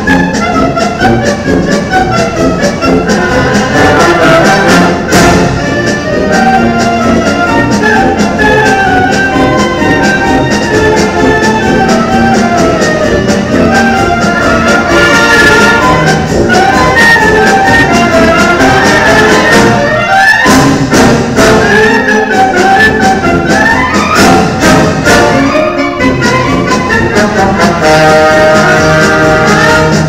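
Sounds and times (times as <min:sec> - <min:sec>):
rising runs through band: 0:00.0 - 0:30.0
wind band playing: 0:00.0 - 0:30.0.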